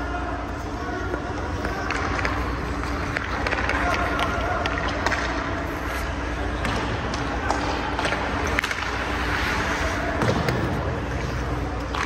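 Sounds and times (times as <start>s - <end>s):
steady low hum: 0.0s - 12.0s
clicks of sticks and puck: 1.1s - 12.0s
skate blades scraping on ice: 7.3s - 11.9s.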